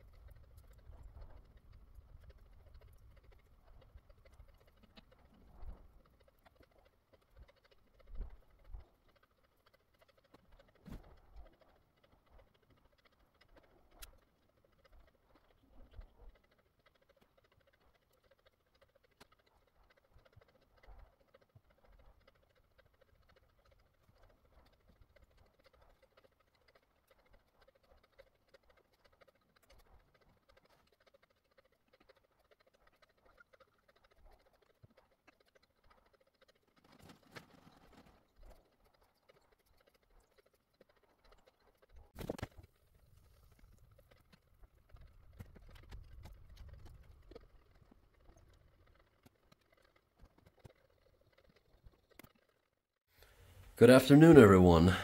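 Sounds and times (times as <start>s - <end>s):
faint ticks: 0.0s - 53.8s.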